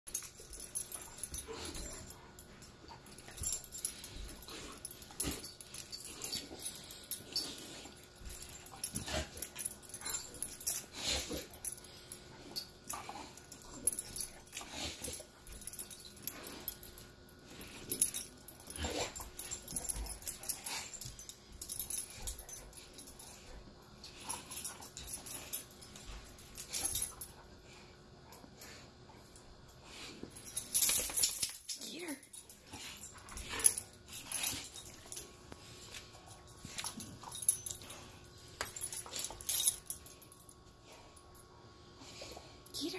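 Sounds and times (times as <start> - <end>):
dogs huffing and mouthing: 0.1 - 27.6, 30.2 - 40.5.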